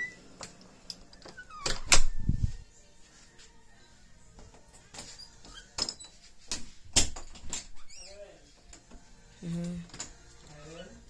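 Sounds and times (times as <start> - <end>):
door squeak: 0.0 - 0.2, 1.2 - 2.3, 5.0 - 6.2, 7.6 - 8.2.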